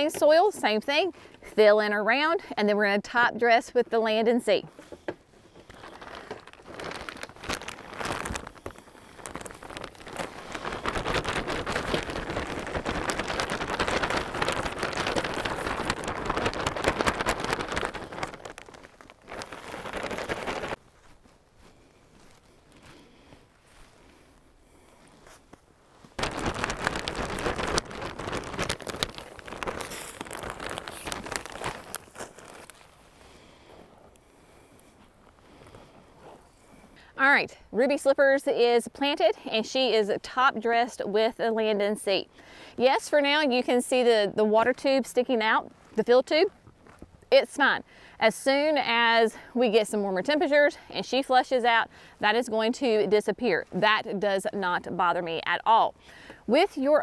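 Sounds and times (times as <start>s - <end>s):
soil pattering and scraping: 4.1s - 42.1s, 42.7s - 57.0s
plastic bag crinkling: 5.5s - 21.3s, 26.1s - 34.6s.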